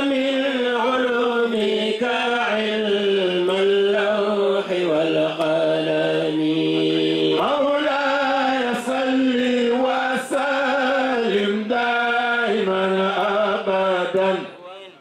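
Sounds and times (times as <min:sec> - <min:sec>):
man chanting into microphone: 0:00.0 - 0:15.0.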